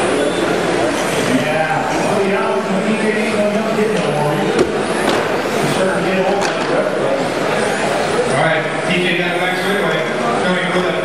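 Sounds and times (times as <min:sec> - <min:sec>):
indistinct talking in a hall: 0:00.0 - 0:11.0.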